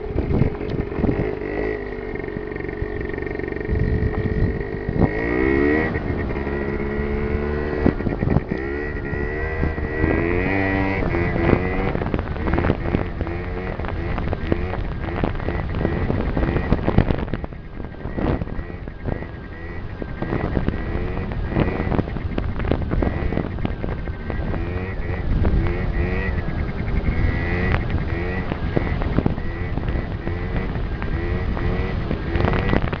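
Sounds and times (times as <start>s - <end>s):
scooter engine running: 0.0s - 33.0s
wind buffeting microphone: 0.0s - 33.0s.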